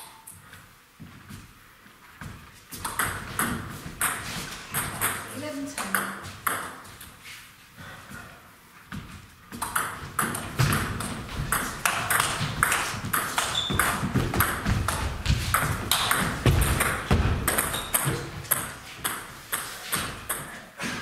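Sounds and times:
footwork thuds: 0:08.9 - 0:20.3.

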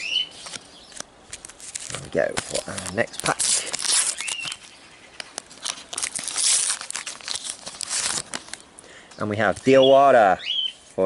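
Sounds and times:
paper packet tearing and crinkling: 0:00.3 - 0:08.6.

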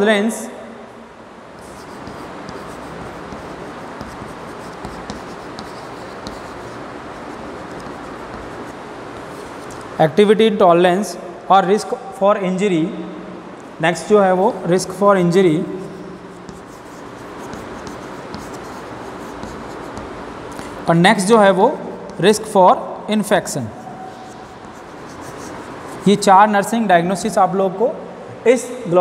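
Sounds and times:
steady background noise: 0:00.0 - 0:29.0
chalk scratching on blackboard: 0:01.6 - 0:09.9, 0:15.8 - 0:22.5, 0:23.4 - 0:26.3
chalk tapping on blackboard: 0:01.6 - 0:09.9, 0:15.9 - 0:20.8, 0:21.8 - 0:22.4, 0:23.8 - 0:26.3.

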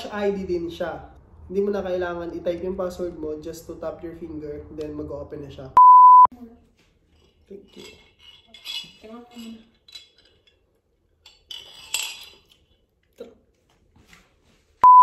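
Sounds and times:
loud electronic beep: 0:05.8 - 0:06.3
glass jar clinking: 0:07.2 - 0:12.9.

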